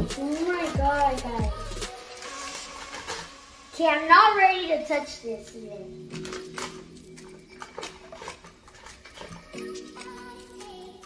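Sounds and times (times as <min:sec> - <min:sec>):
plastic bag crinkling: 0:01.9 - 0:03.6, 0:06.1 - 0:10.4.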